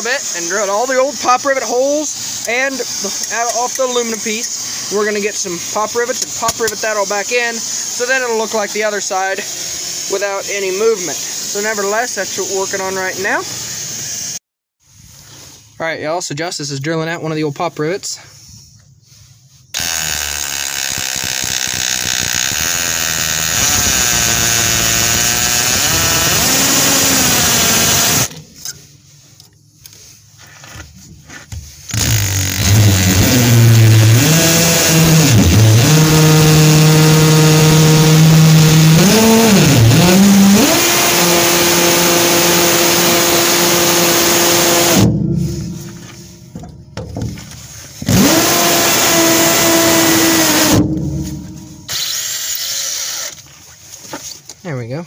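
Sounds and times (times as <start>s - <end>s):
cordless drill motor whining: 0.0s - 14.4s, 19.7s - 28.4s, 31.9s - 46.6s, 48.0s - 53.5s.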